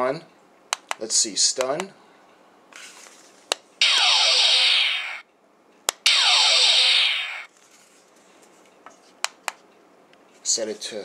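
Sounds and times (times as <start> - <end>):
toy phaser firing effect: 3.8 - 5.2, 6.0 - 7.5.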